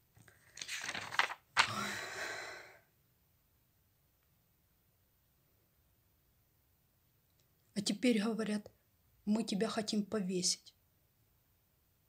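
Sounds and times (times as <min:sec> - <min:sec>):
woman breathing: 0:01.6 - 0:02.9.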